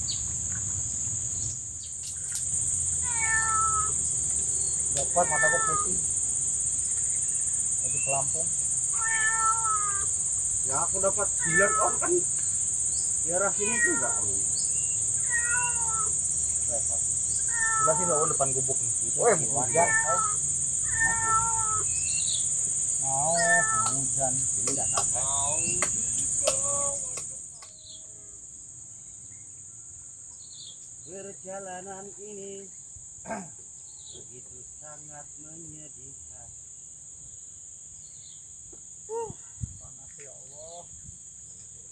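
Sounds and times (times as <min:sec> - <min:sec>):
high insect drone: 0:00.0 - 0:41.9
cat meowing: 0:03.0 - 0:04.0, 0:04.9 - 0:06.0, 0:08.9 - 0:10.1, 0:11.3 - 0:12.2, 0:13.3 - 0:14.5, 0:15.2 - 0:16.2, 0:17.4 - 0:18.4, 0:19.5 - 0:22.0, 0:23.1 - 0:24.1.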